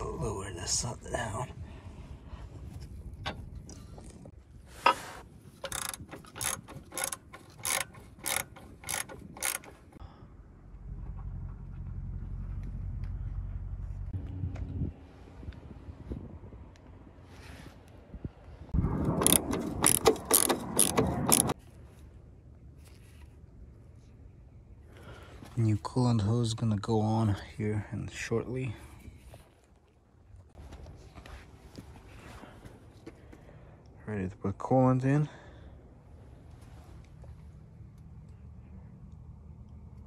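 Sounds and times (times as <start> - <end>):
ratchet wrench clicking: 5.6 - 10.0, 19.1 - 21.6.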